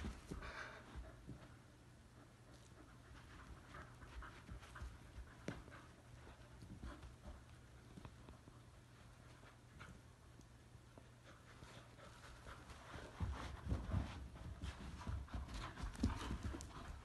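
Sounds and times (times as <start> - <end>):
dogs scuffling and thumping: 0.0 - 1.6, 2.5 - 10.1, 11.4 - 17.0.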